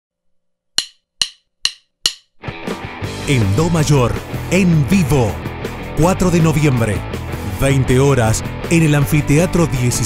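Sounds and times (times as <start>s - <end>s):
sharp percussion clicks: 0.8s - 2.4s
music: 2.4s - 10.0s.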